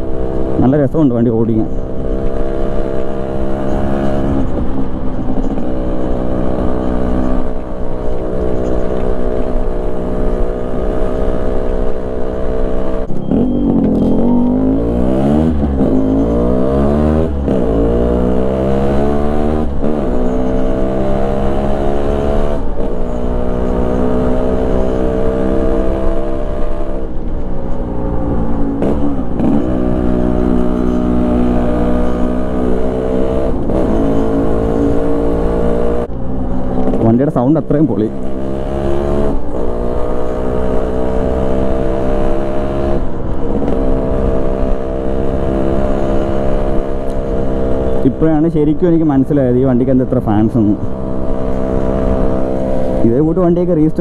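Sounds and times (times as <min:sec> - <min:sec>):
two-stroke motorcycle engine revving: 0:00.0 - 0:54.0.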